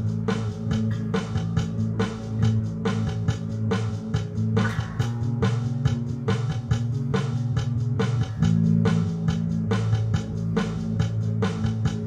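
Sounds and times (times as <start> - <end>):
electric bass guitar: 0.0 - 12.0
music with steady beat: 0.0 - 12.0.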